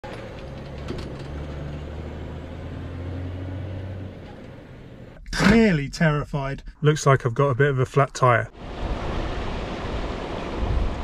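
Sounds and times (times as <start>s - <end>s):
road noise: 0.0s - 6.9s, 8.4s - 11.0s.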